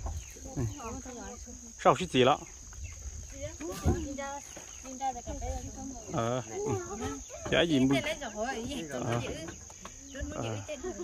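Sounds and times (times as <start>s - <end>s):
high-pitched insect drone: 0.1s - 11.0s.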